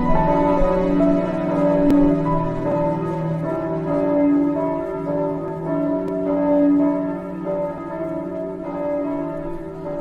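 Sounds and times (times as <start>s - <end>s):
bells pealing: 0.0s - 10.0s.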